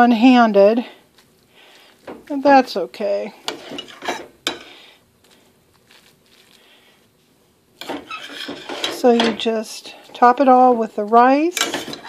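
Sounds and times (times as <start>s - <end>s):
spoon scraping a metal frying pan: 3.4s - 4.8s, 7.8s - 10.8s, 11.4s - 12.0s.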